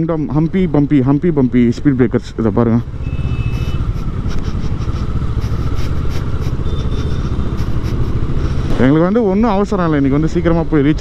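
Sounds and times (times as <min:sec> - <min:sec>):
road noise: 0:00.0 - 0:11.0
motorcycle engine running: 0:00.1 - 0:10.9.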